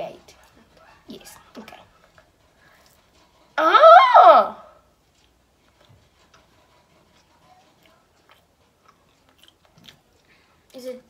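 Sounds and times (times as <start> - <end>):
person chewing: 7.7 - 10.5.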